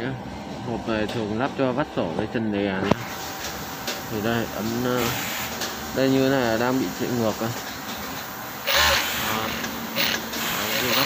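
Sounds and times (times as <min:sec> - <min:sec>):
sewing machine running: 0:08.6 - 0:11.0.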